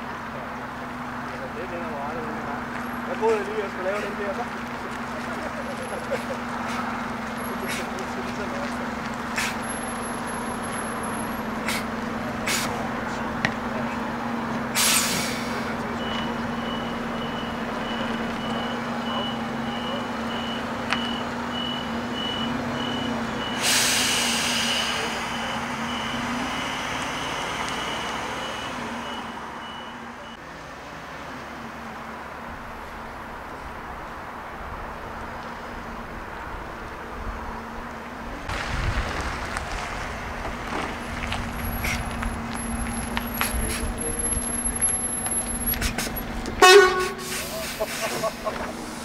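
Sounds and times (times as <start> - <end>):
bus engine running: 0.0 - 49.0
air brake hisses: 12.5 - 12.8, 14.8 - 15.7, 23.5 - 25.4, 47.0 - 49.0
reversing beeper: 15.4 - 30.4.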